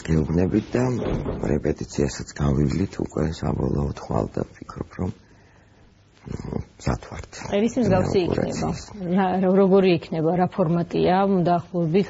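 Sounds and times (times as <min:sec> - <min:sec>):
person talking animatedly: 0:07.5 - 0:09.0.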